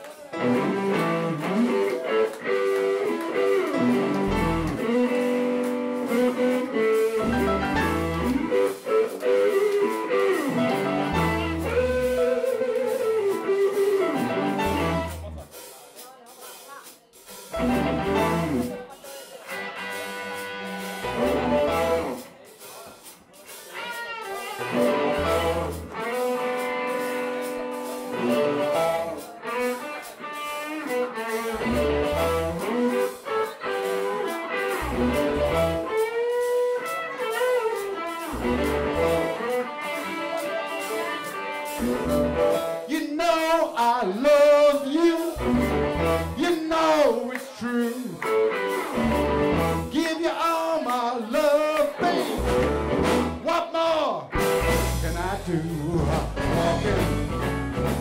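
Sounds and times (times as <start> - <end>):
live blues band playing: 0.0 - 58.0.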